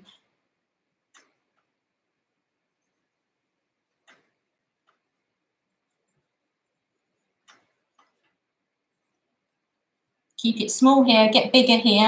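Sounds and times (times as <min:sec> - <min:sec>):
marker pen ticking on paper: 0:01.0 - 0:02.0, 0:02.7 - 0:09.2.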